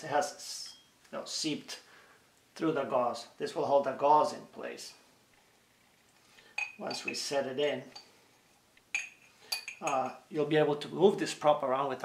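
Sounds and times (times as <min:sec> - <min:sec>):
glass jar clinking: 0:06.4 - 0:08.1, 0:08.9 - 0:10.3.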